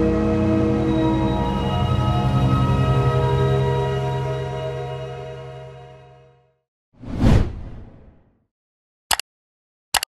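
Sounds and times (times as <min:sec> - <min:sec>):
held musical chord: 0:00.0 - 0:06.5
whoosh of rushing noise: 0:07.0 - 0:08.2.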